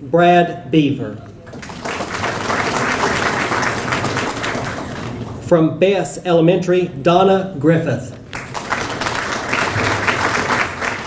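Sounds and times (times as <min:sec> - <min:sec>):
audience applauding: 0:01.5 - 0:05.4, 0:08.3 - 0:11.0.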